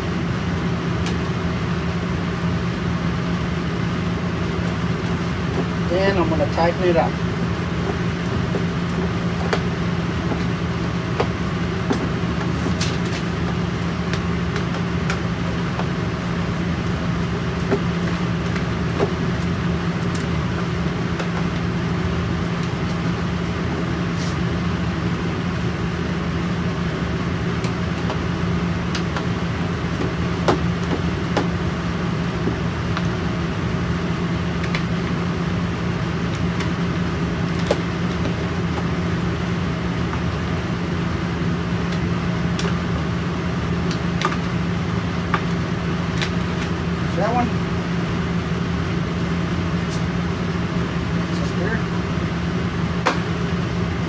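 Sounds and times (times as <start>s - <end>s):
low machine hum: 0.0s - 54.0s.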